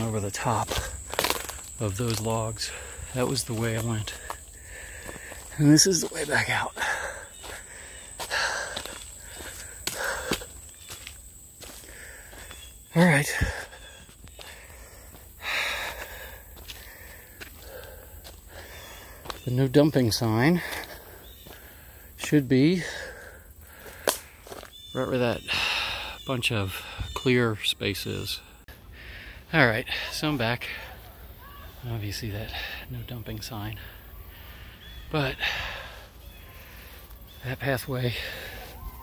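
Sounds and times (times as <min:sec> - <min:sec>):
footsteps on dry leaves: 0:00.0 - 0:12.7, 0:15.8 - 0:19.6, 0:23.8 - 0:24.9.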